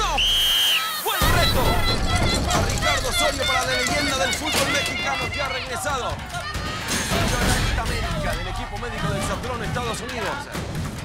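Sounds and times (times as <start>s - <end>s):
people shouting outdoors: 0.0s - 9.7s.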